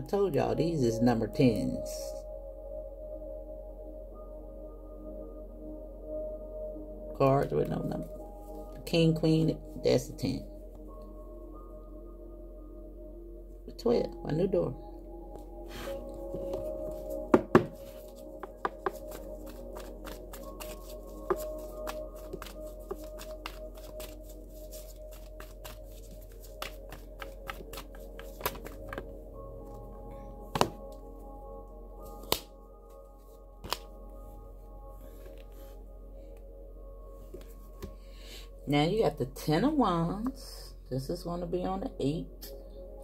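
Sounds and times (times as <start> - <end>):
ambient music with sustained tones: 0.0 - 43.0
cards being shuffled: 15.7 - 29.1, 33.6 - 33.9.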